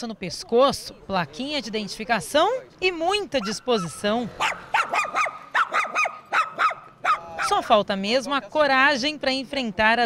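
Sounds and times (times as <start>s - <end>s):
dog barking rapidly: 3.4s - 7.7s.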